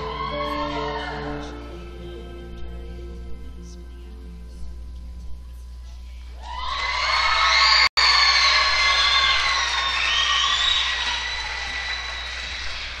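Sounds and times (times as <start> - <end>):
whoops and shouts: 0.0 - 1.4, 6.4 - 13.0
audience cheering and applauding: 0.0 - 1.6, 6.4 - 13.0.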